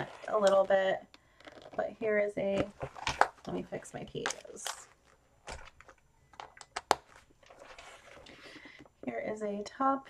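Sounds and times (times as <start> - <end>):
binder rustling: 4.2 - 8.9.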